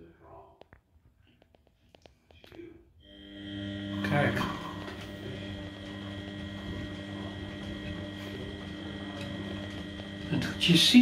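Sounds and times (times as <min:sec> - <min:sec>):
washing machine motor humming: 0:03.0 - 0:11.0.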